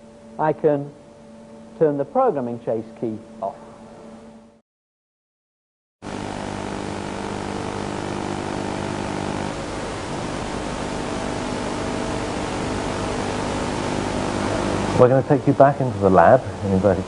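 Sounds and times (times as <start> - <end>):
buzzing electrical hum: 0.0 - 4.6, 6.0 - 17.0
steady hiss: 6.1 - 17.0.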